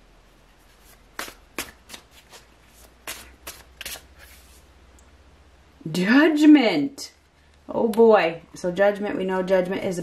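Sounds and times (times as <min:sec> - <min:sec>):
cards being shuffled: 0:00.6 - 0:04.6.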